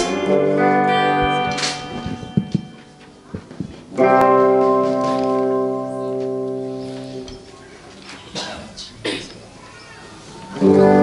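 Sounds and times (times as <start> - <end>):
soft plucked notes: 0.0 - 7.4.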